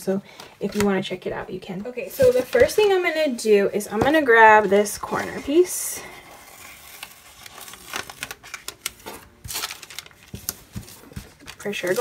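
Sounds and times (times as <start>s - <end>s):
paper rustling and crinkling: 2.1s - 3.1s, 4.0s - 12.0s.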